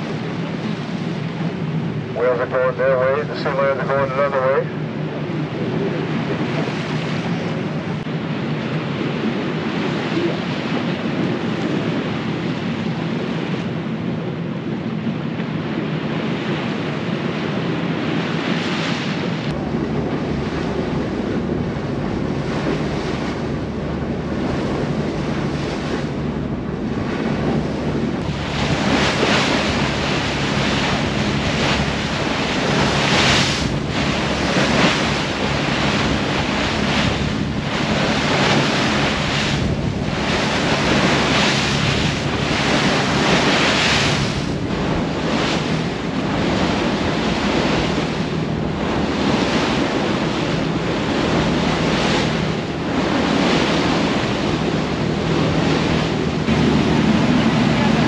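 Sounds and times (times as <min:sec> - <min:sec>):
boat engine hum: 0:00.0 - 0:58.0
bow wake rushing along hull: 0:00.0 - 0:58.0
wind buffeting microphone: 0:00.0 - 0:58.0.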